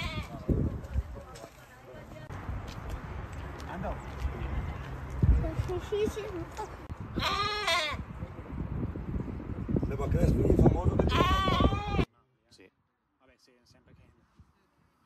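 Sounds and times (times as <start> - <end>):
lamb bleating: 7.2 - 8.0, 11.1 - 12.1.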